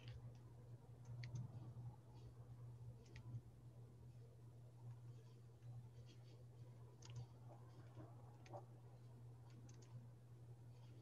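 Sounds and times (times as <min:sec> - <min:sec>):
faint clicks: 0:00.0 - 0:01.6, 0:03.0 - 0:03.4, 0:06.9 - 0:08.7, 0:09.4 - 0:10.0
low steady hum: 0:00.0 - 0:11.0.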